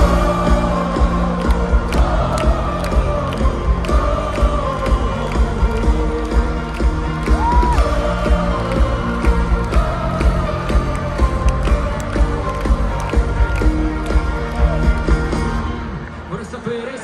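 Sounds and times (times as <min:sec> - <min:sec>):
crowd cheering: 0:00.0 - 0:17.0.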